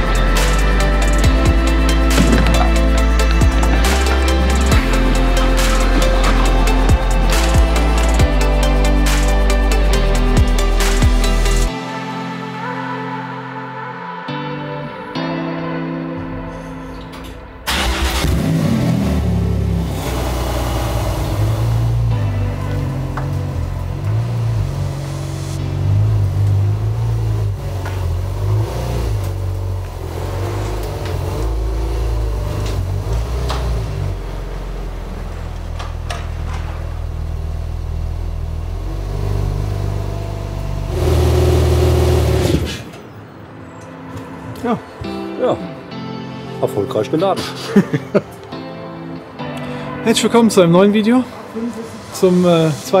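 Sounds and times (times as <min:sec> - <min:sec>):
car engine starting and running: 0:00.0 - 0:11.7, 0:16.2 - 0:44.1.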